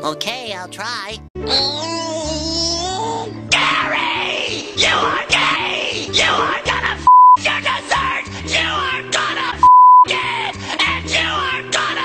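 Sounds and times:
music: 0.0 - 12.0
censor bleep: 7.1 - 7.4, 9.6 - 10.1.

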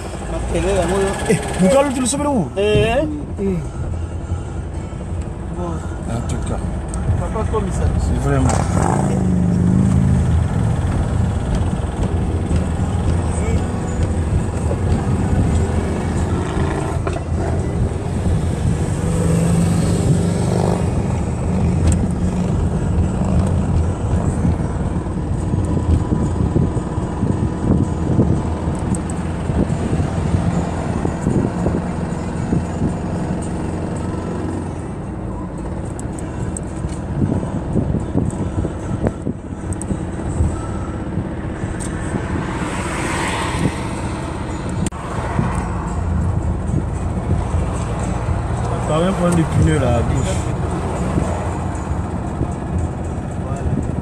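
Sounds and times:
van cabin engine and tyre rumble: 0.0 - 54.0.

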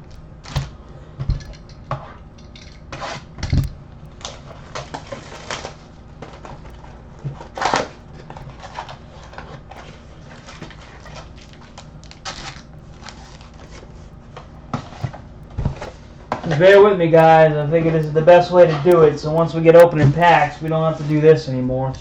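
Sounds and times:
plastic shrink wrap crinkling: 0.0 - 22.0.

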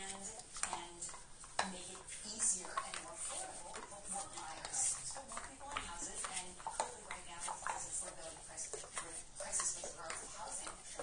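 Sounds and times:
puppies suckling: 0.0 - 11.0.

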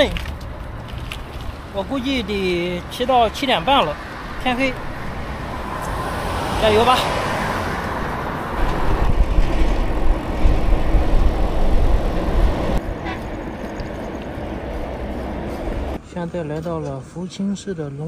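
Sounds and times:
traffic and wind rush: 0.0 - 18.0
heavy low truck rumble: 7.4 - 16.0.

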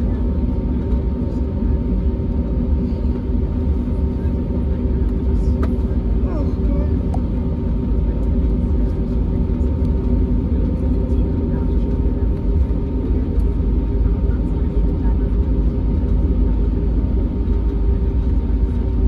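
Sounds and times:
aircraft engines low rumble: 0.0 - 19.0
constant cabin hums: 0.0 - 19.0.

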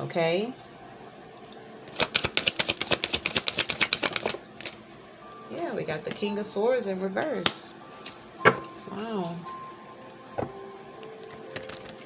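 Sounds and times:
cards being shuffled: 2.0 - 4.8, 11.3 - 12.0.

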